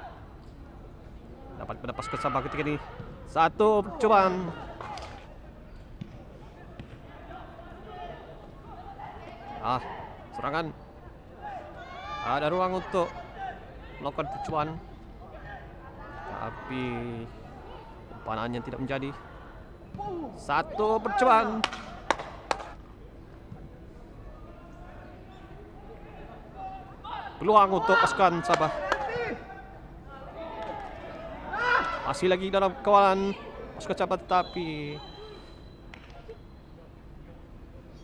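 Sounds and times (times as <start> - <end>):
faint outdoor ambience: 0.0 - 38.0
distant players shouting: 11.4 - 22.7, 26.2 - 36.3.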